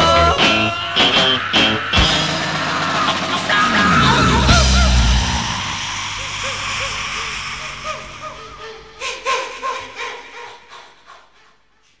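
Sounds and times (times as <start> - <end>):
rock song: 0.0 - 6.4
pitch-bending cries: 0.0 - 10.7.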